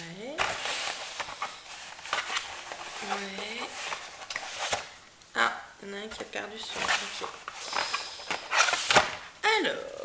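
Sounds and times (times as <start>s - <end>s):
paper and cardboard rustling: 0.3s - 5.0s, 6.4s - 9.3s.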